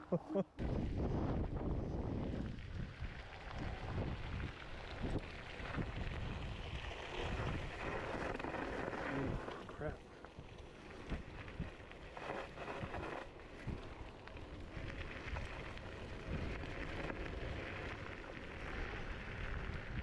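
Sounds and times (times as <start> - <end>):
wind buffeting microphone: 0.6 - 9.9
tyres rolling on gravel: 0.6 - 20.0.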